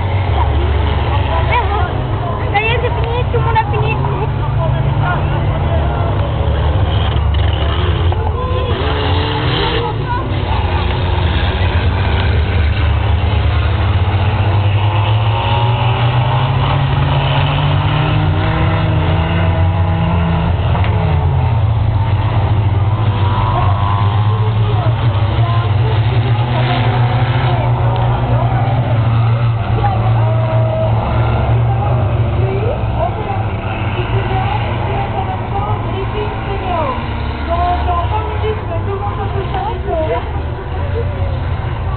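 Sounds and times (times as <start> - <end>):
race car engines accelerating: 0.0 - 41.9.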